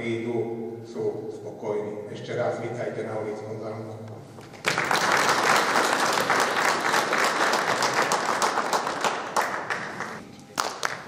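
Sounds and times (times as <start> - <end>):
audience applauding: 4.5 - 11.0.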